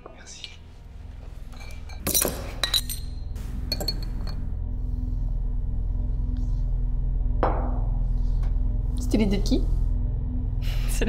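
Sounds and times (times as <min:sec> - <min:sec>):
low drone: 0:00.6 - 0:11.0
glass bottles clinking: 0:01.4 - 0:04.4.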